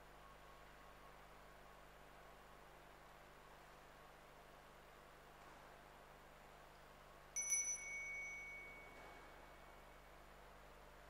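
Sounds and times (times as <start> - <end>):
altar bell ringing: 7.4 - 9.2.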